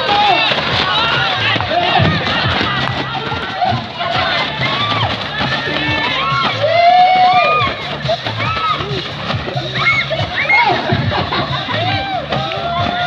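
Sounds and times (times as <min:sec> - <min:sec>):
crowd shouting and cheering: 0:00.0 - 0:13.0
music with steady beat: 0:00.0 - 0:13.0.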